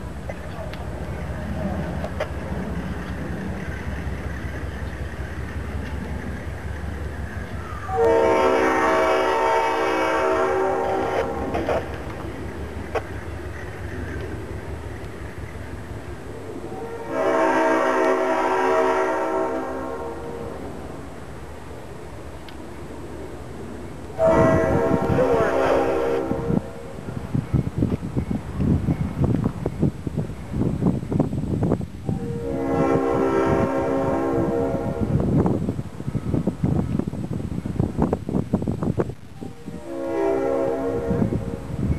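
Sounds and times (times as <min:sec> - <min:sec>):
diesel engine rumbling: 0:00.0 - 0:40.1
locomotive air horn blasts: 0:07.9 - 0:11.9, 0:16.7 - 0:20.6, 0:24.2 - 0:26.7, 0:32.2 - 0:35.2, 0:39.6 - 0:41.6.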